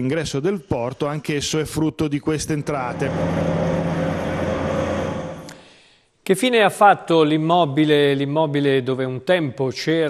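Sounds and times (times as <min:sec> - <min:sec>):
dredging crane running: 0:02.7 - 0:05.6.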